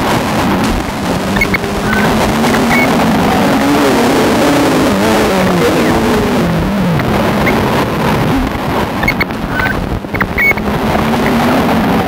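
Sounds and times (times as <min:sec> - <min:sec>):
dense noisy electronic wash: 0:00.0 - 0:12.0
wavering electronic pitches: 0:00.6 - 0:11.8.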